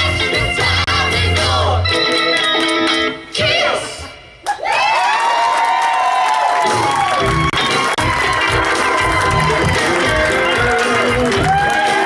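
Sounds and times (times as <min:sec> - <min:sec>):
audience cheering: 0:04.5 - 0:12.0.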